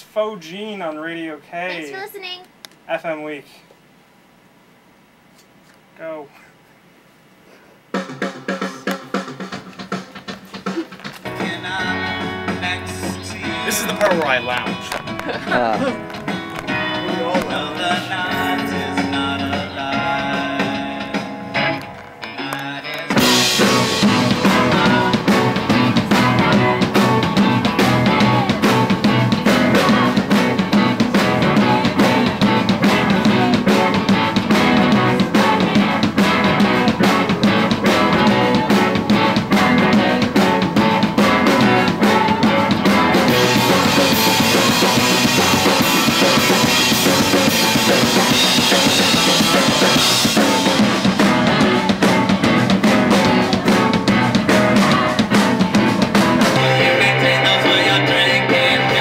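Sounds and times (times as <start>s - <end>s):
drum kit beat: 7.9s - 59.0s
guitars: 8.3s - 59.0s
sung vocals: 11.2s - 14.8s, 15.4s - 59.0s.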